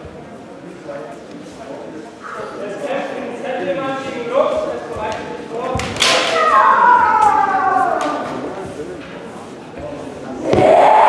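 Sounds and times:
fighters' drawn-out shouts: 6.0 - 8.4, 10.4 - 11.0.

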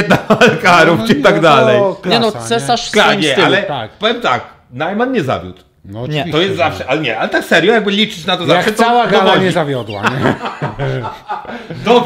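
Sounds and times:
conversational speech: 0.4 - 12.0
man chuckling: 10.0 - 12.0.

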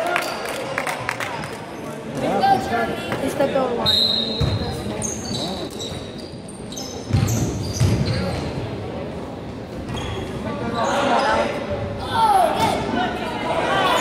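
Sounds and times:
sneaker squeaks: 3.8 - 8.6, 9.8 - 11.5
basketball bouncing on gym floor: 4.4 - 4.8, 7.1 - 8.4.

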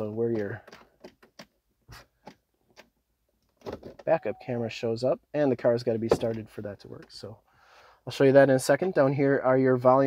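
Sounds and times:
man speaking: 0.0 - 0.6, 4.0 - 7.4, 8.1 - 10.0.

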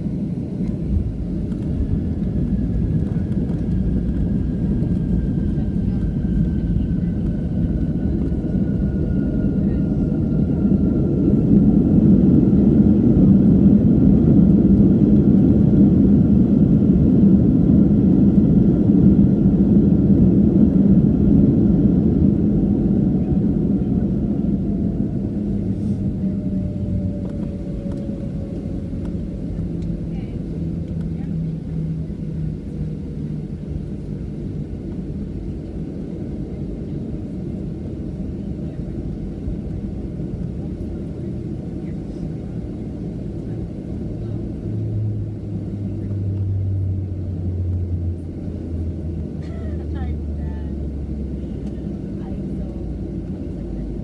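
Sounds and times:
jet engine rumble: 0.0 - 54.0.

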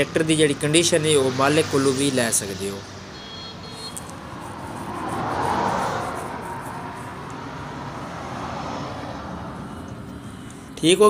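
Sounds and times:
outdoor background noise: 0.0 - 11.0
engine drone: 3.7 - 10.8.

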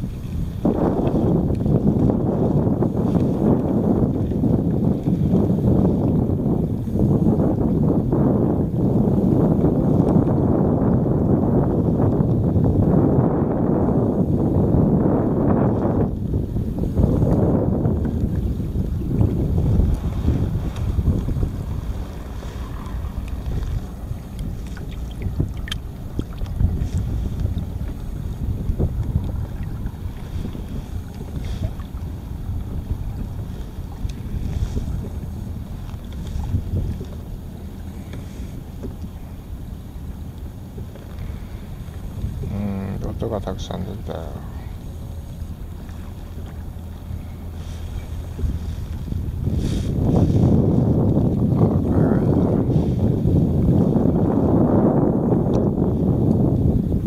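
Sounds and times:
water lapping against kayak hull: 0.0 - 57.0
wind buffeting microphone: 0.0 - 57.0.

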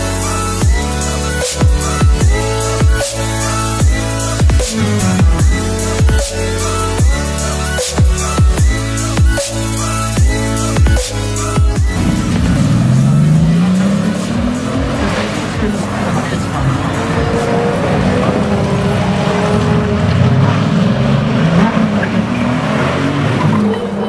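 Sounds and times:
car engine accelerating hard: 10.2 - 24.0.

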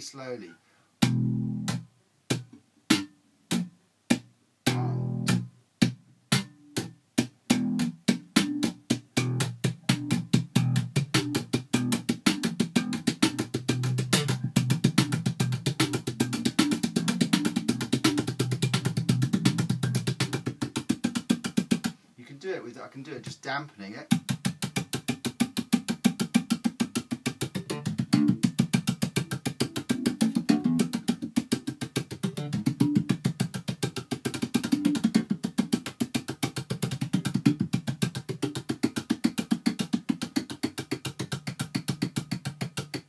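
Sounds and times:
slap bass guitar: 1.0 - 1.8, 4.6 - 5.5, 7.5 - 20.6, 27.5 - 31.2, 32.0 - 33.3.

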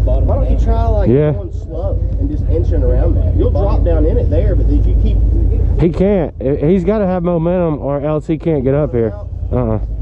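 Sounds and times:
man talking: 0.0 - 10.0
utility vehicle engine rumbling: 0.0 - 10.0.

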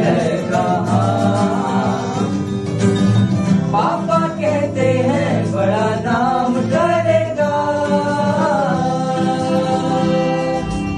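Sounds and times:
group singing: 0.0 - 2.9, 3.7 - 10.9
strummed acoustic guitars: 0.0 - 10.9.

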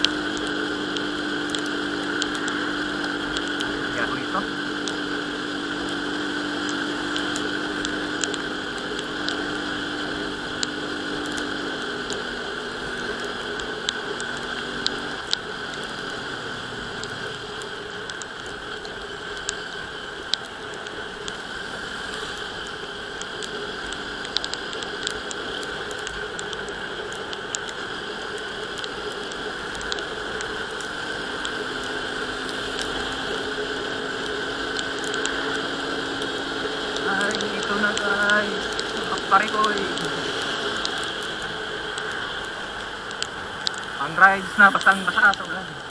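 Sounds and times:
raindrops ticking on camera: 0.0 - 45.9
scooter riding noise: 0.0 - 45.9.

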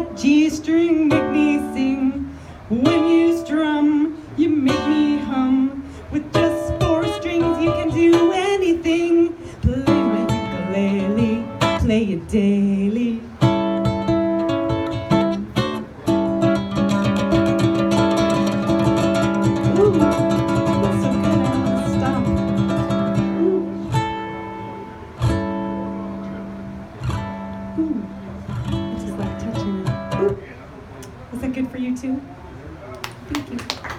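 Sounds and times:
ukulele strummed in blues rhythm: 0.0 - 31.2.

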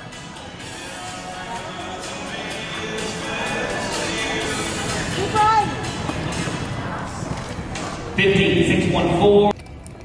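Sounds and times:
music over loudspeakers: 0.0 - 9.5.

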